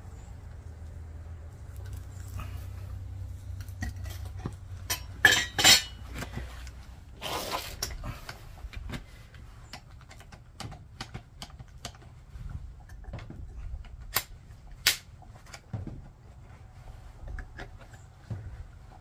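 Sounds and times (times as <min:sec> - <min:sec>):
metal tongs and crucible clanking: 0:03.6 - 0:06.2
short scrape: 0:07.2 - 0:08.2.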